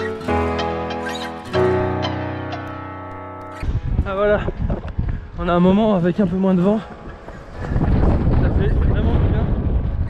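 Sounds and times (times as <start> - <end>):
background music held chord: 0.0 - 8.3
wind buffeting microphone: 3.6 - 10.0.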